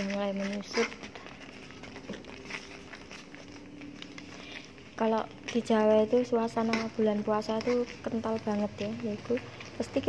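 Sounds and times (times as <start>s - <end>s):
jam bubbling and popping: 0.0s - 10.0s
metal spoon stirring: 0.0s - 10.0s.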